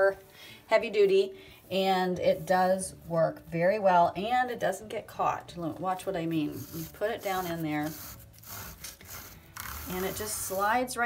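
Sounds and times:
bristles scraping in drain: 6.5 - 10.7.

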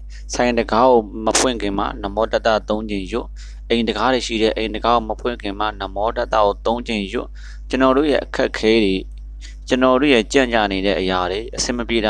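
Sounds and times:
steady low hum: 0.0 - 12.0
person reciting: 0.1 - 12.0.

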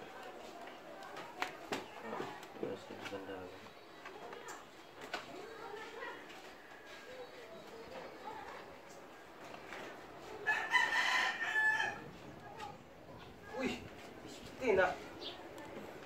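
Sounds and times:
rooster crowing: 10.4 - 12.1.

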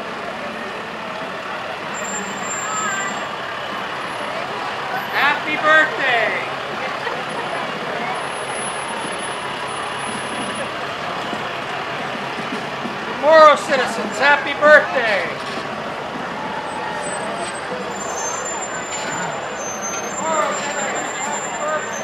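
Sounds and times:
crowd chatter: 0.0 - 22.0
pickup truck engine running: 0.0 - 22.0
person calling out loudly: 5.2 - 6.5, 13.2 - 15.3.

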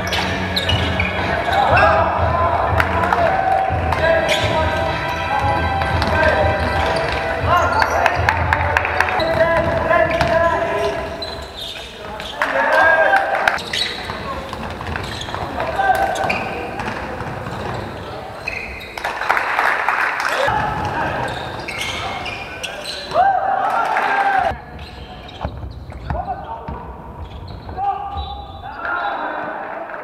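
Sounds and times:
players' voices echoing: 0.0 - 30.0
basketball bouncing on gym floor: 5.8 - 8.6, 9.2 - 10.6.

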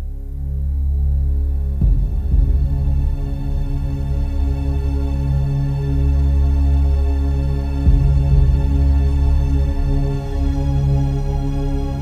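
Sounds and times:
ambient music drone: 0.0 - 12.0.

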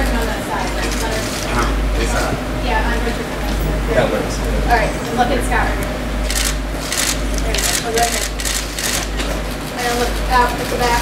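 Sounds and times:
background chatter: 0.0 - 11.0
steady low hum: 0.0 - 11.0
camera shutters clicking: 6.3 - 9.3.

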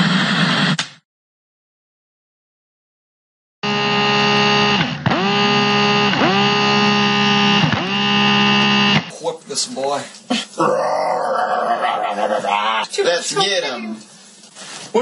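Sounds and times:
loud electronic buzz: 3.6 - 9.1.

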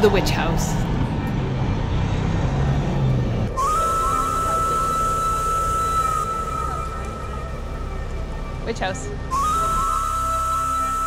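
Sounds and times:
street traffic: 0.0 - 11.0
high whistle-like musical note: 3.5 - 11.0.

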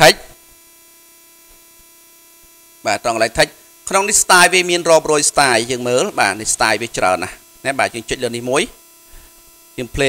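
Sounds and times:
man speaking: 0.0 - 0.3, 2.9 - 8.8, 9.8 - 10.0
low electrical hum: 0.0 - 10.0.

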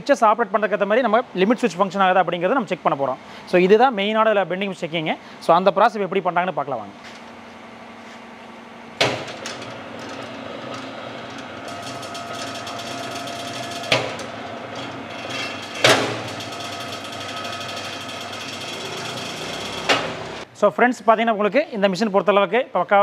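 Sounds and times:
motor humming and whining: 7.0 - 20.5.

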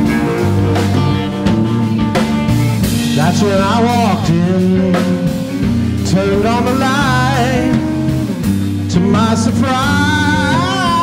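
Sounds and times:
band playing funky blues-rock: 0.0 - 11.0.

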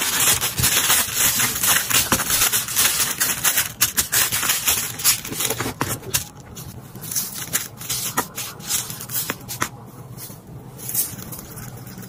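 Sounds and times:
tissue paper crinkling: 0.0 - 9.6.

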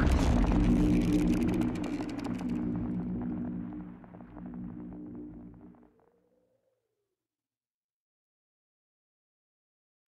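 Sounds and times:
deep boom: 0.0 - 5.2
low hum of steady tones: 0.0 - 5.8
scattered crackles: 0.0 - 5.8.

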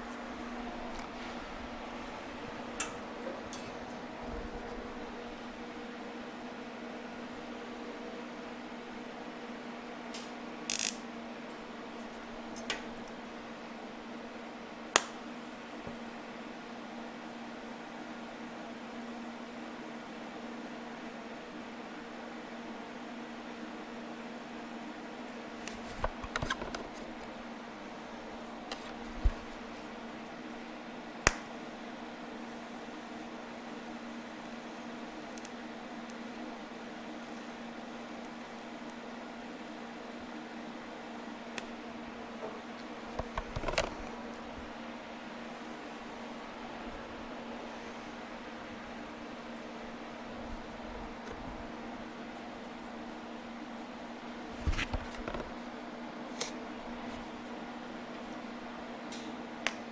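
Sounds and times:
welder humming and hissing: 0.0 - 14.2.

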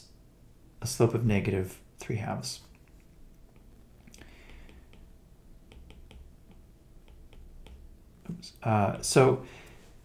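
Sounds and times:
pen taps and clicks: 4.4 - 8.0.

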